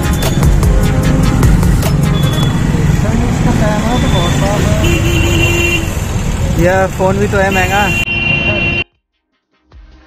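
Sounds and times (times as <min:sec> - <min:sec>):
road noise rumble: 0:00.0 - 0:08.9
vehicle horn: 0:04.0 - 0:06.1, 0:07.5 - 0:09.0.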